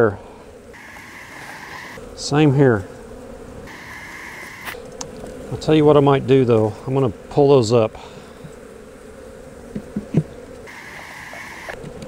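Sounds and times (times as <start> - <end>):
honey bees buzzing: 0.0 - 12.0
higher-pitched buzz: 0.7 - 2.9, 3.5 - 7.5, 9.6 - 11.9.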